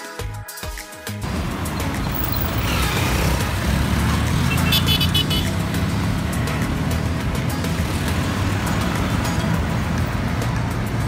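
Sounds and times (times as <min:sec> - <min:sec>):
traffic rumble: 0:01.2 - 0:11.0.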